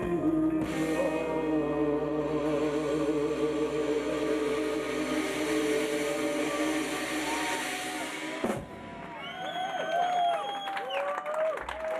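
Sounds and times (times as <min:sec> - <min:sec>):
rock band holding a sustained chord: 0:00.0 - 0:09.4.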